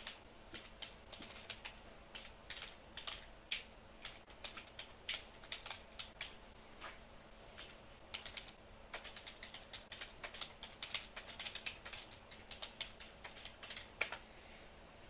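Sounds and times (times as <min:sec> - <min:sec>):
computer keyboard typing: 0:00.0 - 0:06.4, 0:07.6 - 0:14.2.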